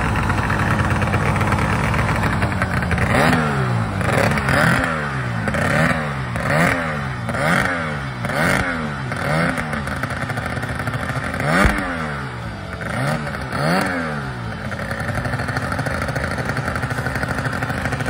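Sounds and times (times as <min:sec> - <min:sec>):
outboard motor revving: 0:00.0 - 0:18.0.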